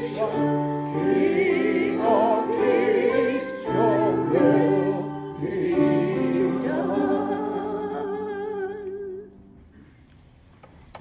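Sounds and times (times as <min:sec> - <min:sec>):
sustained accompanying chord: 0:00.0 - 0:08.6.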